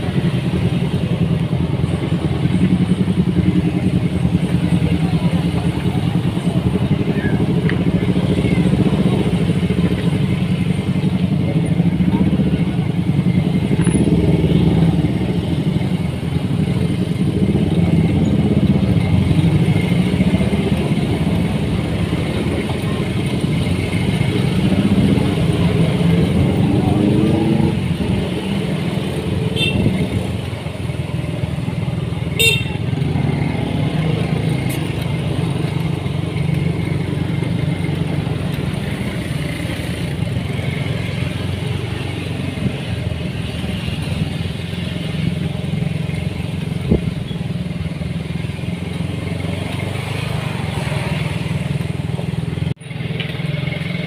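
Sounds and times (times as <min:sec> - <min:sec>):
voices: 0:00.0 - 0:47.6
motorcycle engine running: 0:00.0 - 0:54.0
traffic: 0:00.0 - 0:54.0.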